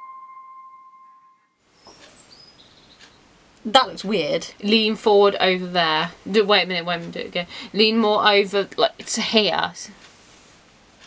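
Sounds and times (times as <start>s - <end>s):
piano music: 0.0s - 1.5s
faint high bird chirps: 0.0s - 3.2s
faint room noise: 0.0s - 11.0s.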